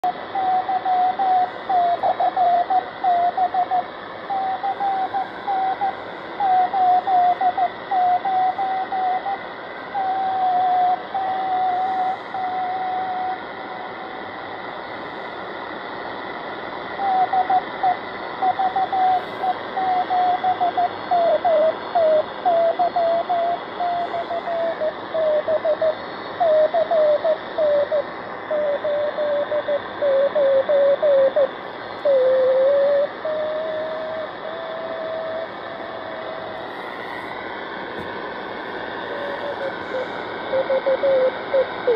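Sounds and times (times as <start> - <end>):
radio band hiss: 0.0 - 41.9.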